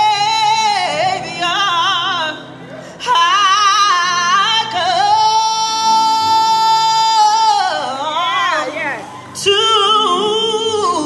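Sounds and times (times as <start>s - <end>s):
woman singing through microphone: 0.0s - 11.0s.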